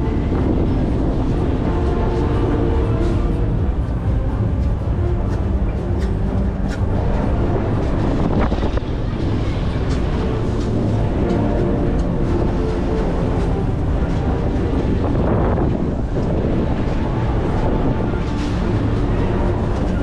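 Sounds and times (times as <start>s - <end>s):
music over sound system: 0.0s - 20.0s
wind on microphone: 0.0s - 20.0s.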